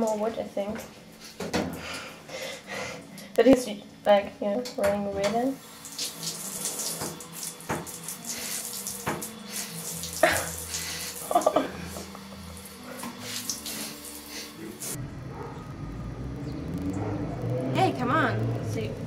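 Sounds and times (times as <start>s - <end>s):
water running from tap: 4.9s - 15.0s.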